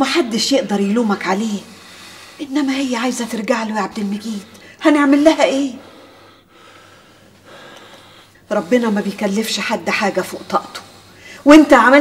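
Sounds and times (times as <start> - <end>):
low room hiss: 0.0 - 12.0
faint breath: 1.6 - 2.5, 5.7 - 9.0, 10.2 - 11.5.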